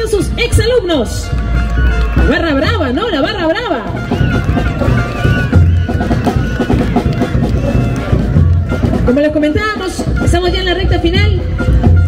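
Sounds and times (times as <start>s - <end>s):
snare drums beating quickly: 2.1s - 12.0s.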